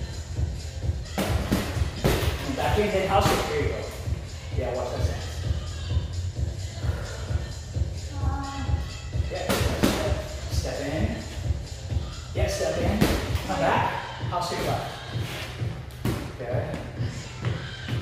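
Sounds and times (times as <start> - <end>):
background music with steady beat: 0.0 - 18.0.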